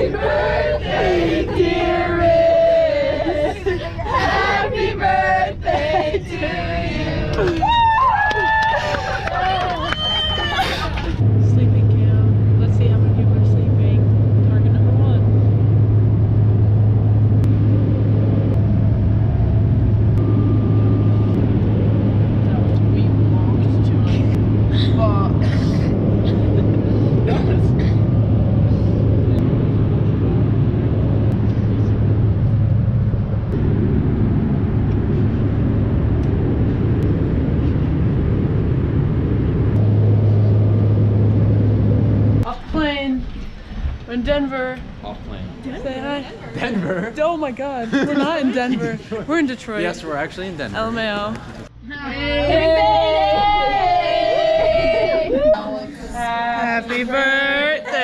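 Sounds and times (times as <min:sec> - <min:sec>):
rush of air noise: 0:00.0 - 0:46.4
jet engine hum: 0:00.0 - 0:58.0.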